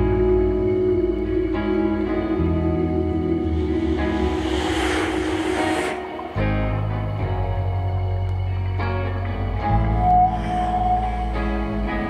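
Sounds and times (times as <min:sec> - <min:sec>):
rock band droning chord: 0:00.0 - 0:08.6.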